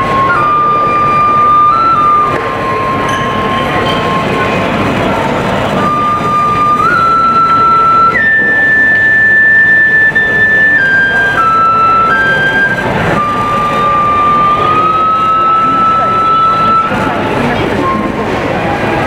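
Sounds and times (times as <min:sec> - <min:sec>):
background noise: 0:00.0 - 0:19.0
bamboo flute melody: 0:00.0 - 0:19.0.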